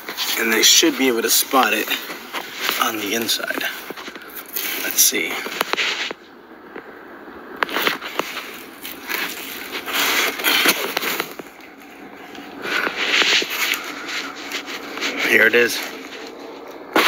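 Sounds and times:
carpet and insulation rustling: 0.0s - 6.3s, 7.6s - 17.0s.

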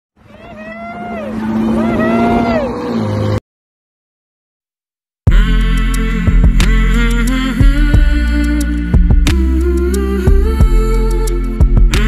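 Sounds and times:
steady low drone: 5.3s - 12.0s.

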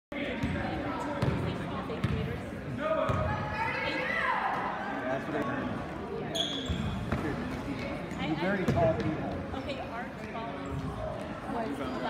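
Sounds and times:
brief high squeak: 6.3s - 7.0s.

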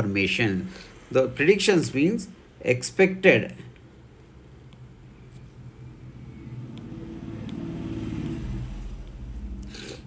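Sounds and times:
motor vehicle passing: 5.4s - 10.0s.

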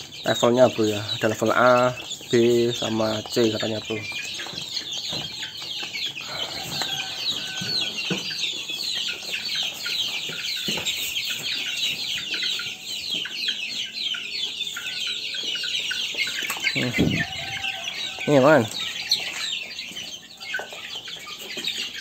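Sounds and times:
chicks peeping: 0.0s - 22.0s.

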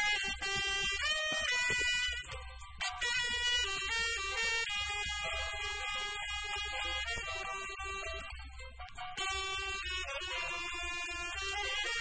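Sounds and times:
tenor saxophone melody: 0.0s - 12.0s.

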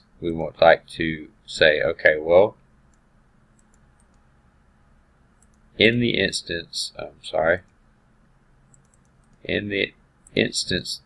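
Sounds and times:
computer mouse clicks: 2.6s - 4.3s, 5.3s - 5.7s, 8.7s - 9.4s.

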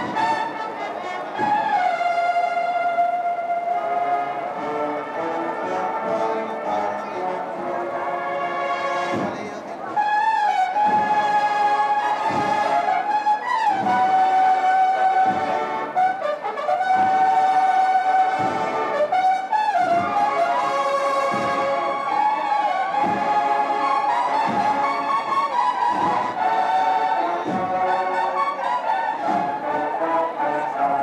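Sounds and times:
brass band playing a march: 0.0s - 31.0s
deep drum beat: 4.4s - 31.0s.

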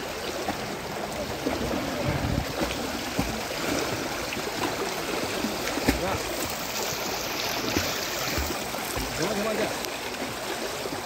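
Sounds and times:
water splashing from swimming: 0.0s - 11.0s.

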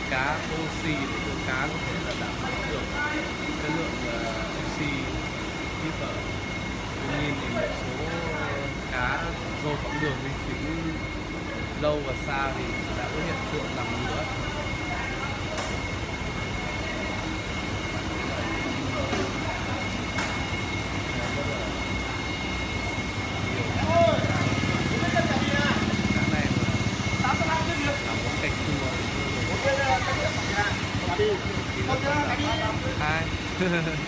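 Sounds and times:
thin high whine: 0.0s - 34.0s.

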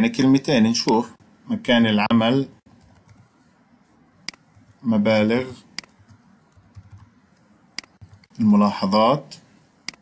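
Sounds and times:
computer keyboard typing: 2.7s - 3.4s, 4.3s - 4.9s, 5.8s - 8.5s.

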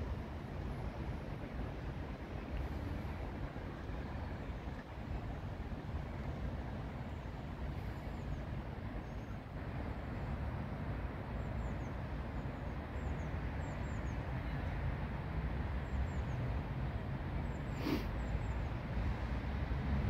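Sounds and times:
road traffic rumble: 14.3s - 20.0s.

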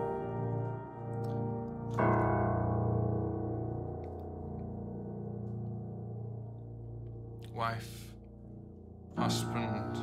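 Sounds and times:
piano chord ringing: 0.0s - 10.0s.

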